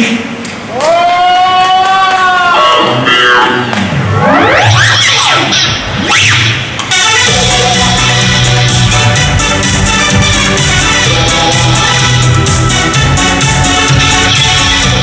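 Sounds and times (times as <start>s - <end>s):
rising and falling pitch glides: 3.9s - 8.0s
bass and beat: 6.7s - 15.0s
live band playing disco-pop: 6.9s - 15.0s.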